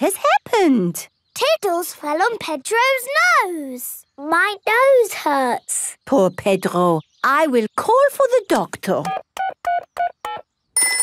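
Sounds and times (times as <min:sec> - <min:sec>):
phone keypad beeps: 0:09.0 - 0:11.0
desk telephone ringing: 0:09.7 - 0:11.0.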